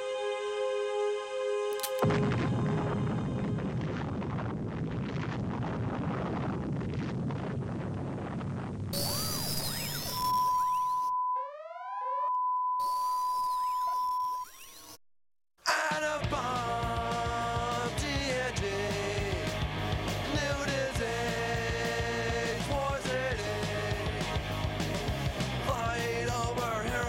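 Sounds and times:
rushing noise: 2.0s - 6.1s
chirping electronic sweeps: 9.0s - 15.0s
held electronic tone: 9.0s - 15.0s
high electronic beep: 9.0s - 15.0s.

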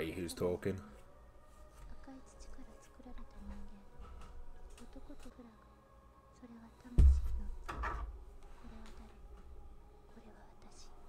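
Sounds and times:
low room hum: 0.0s - 11.0s
woman speaking softly: 1.8s - 5.7s, 6.3s - 7.8s, 8.6s - 9.4s, 10.0s - 11.0s.

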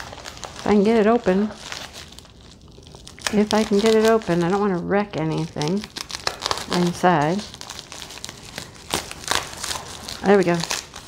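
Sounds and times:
plastic envelope crinkling: 0.0s - 11.0s.

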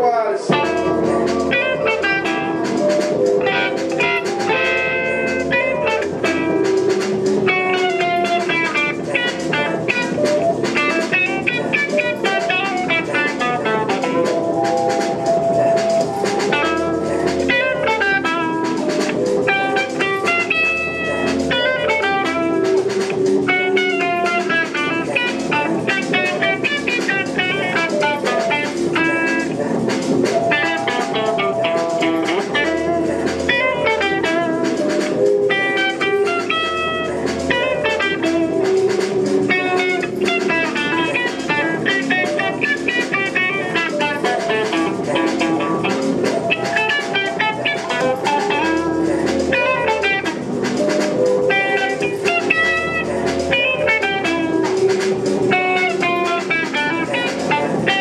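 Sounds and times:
electric guitar picking: 0.4s - 58.0s.

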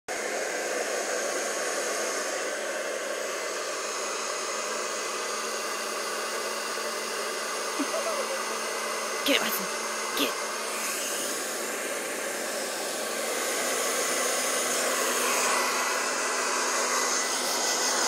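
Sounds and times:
blow dryer air rushing: 0.1s - 18.0s.

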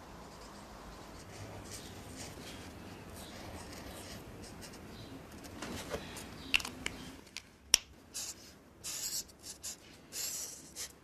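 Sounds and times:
marker scratching on paper: 0.2s - 4.9s, 8.1s - 11.0s.

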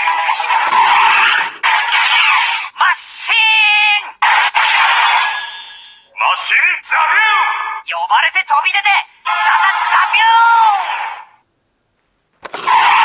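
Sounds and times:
toy electronic sound effects: 9.3s - 10.8s, 12.6s - 13.0s.

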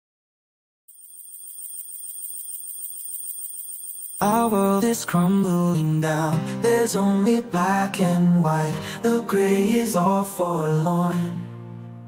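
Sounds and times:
steady high ring: 0.9s - 4.8s
alarm bell ringing rapidly: 0.9s - 5.2s.

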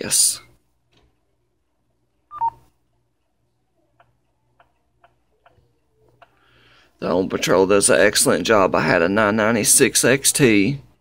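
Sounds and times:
soft touchscreen ticks: 4.0s - 6.4s.

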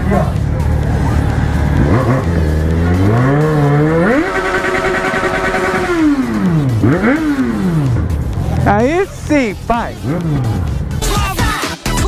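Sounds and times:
motorcycle engine revving: 0.0s - 11.1s.

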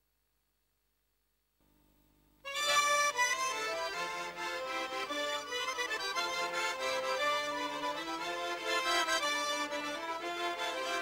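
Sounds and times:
accordion folk dance music: 2.4s - 11.0s.

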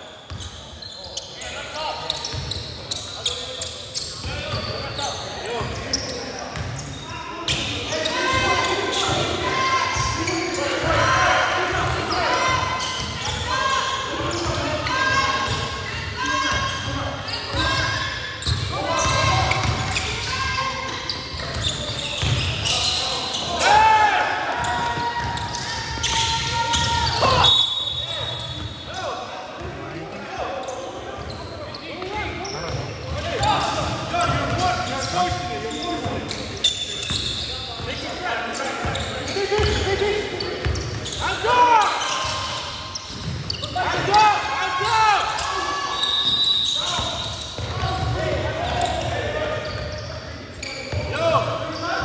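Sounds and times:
sneakers squeaking on hardwood: 0.2s - 11.0s, 11.8s - 23.7s, 24.5s - 28.9s, 30.6s - 52.0s
players calling out: 30.4s - 52.0s.

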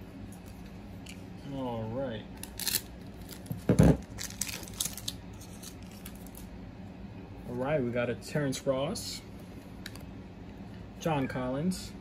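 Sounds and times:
plastic wrapper crinkling and tearing: 2.4s - 6.5s.

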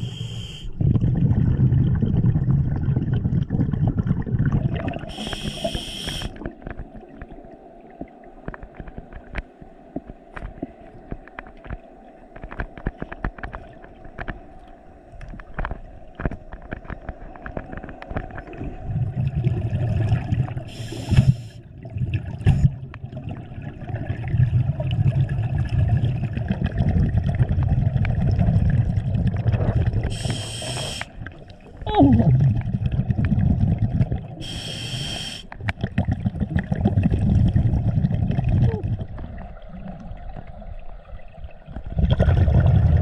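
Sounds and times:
hissing regulator inhales: 0.0s - 0.7s, 5.1s - 6.4s, 20.7s - 21.6s, 30.1s - 31.2s, 34.4s - 35.5s
bubbling exhales: 0.0s - 6.5s, 18.7s - 40.1s, 41.8s - 43.0s.

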